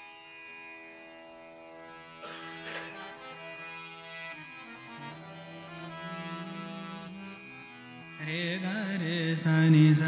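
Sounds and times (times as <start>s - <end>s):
harmonium melody: 0.0s - 10.0s.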